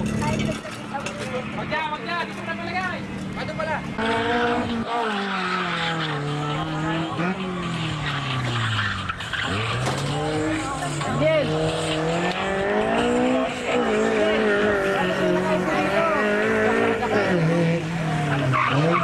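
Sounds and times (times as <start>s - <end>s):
car engine braking and accelerating: 0.0s - 19.0s
tire squeal: 3.4s - 19.0s.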